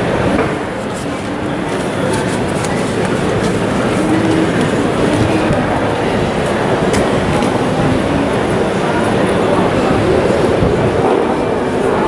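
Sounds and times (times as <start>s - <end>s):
faint indistinct voices: 0.0s - 12.0s
low rumble of market hall: 0.0s - 12.0s.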